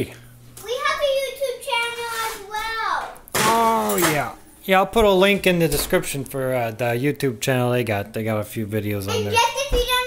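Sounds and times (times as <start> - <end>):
child's high-pitched voice: 0.6 - 3.2, 9.1 - 10.0.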